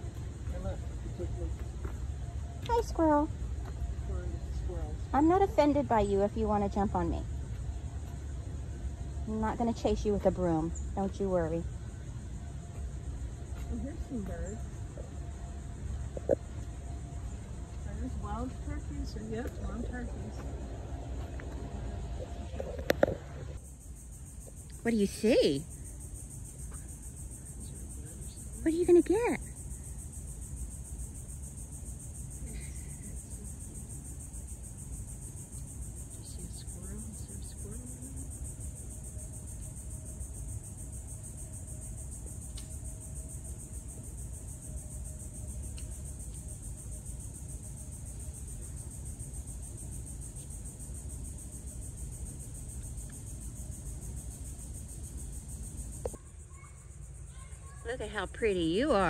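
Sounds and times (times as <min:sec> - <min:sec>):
low outdoor rumble: 0:00.0 - 0:56.2
high-pitched insect drone: 0:00.0 - 0:59.0.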